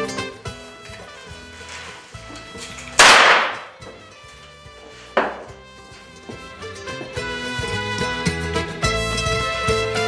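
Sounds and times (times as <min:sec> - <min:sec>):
background music: 0:00.0 - 0:10.0
revolver gunshots: 0:03.0 - 0:03.8.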